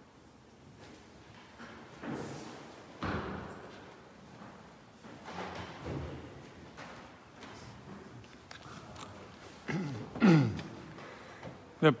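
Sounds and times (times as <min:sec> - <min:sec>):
faint clicks and rustles: 0:03.8 - 0:09.7.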